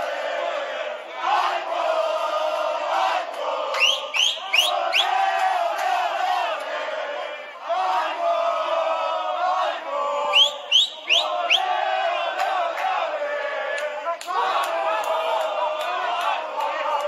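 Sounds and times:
crowd chanting and singing: 0.0s - 17.0s
short rising whistles: 3.8s - 5.1s, 10.3s - 11.7s.

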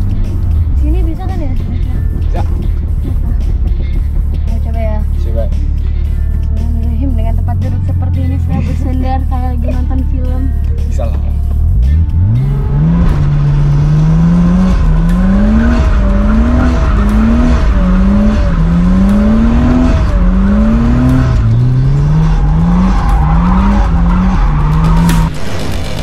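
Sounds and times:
car engine revving: 0.0s - 26.0s.

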